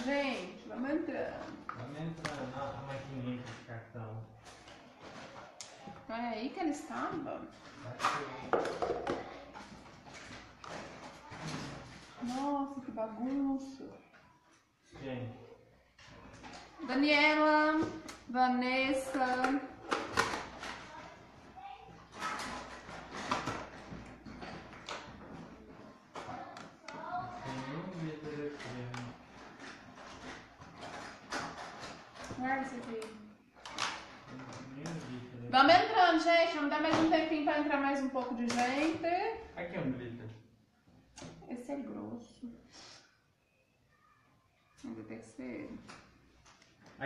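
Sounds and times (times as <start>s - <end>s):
rustling and clatter: 4.4s - 6.1s, 6.7s - 15.0s, 19.0s - 35.3s.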